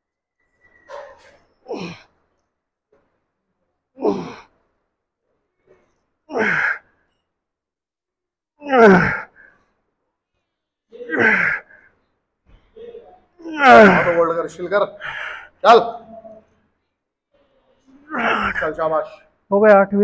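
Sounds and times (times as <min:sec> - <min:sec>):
man grunting with effort: 0:08.6 - 0:09.3, 0:11.0 - 0:11.7, 0:13.5 - 0:14.2.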